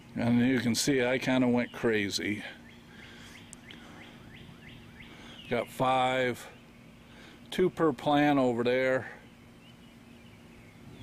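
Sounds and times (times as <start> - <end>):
bird chirping: 1.3 - 11.0.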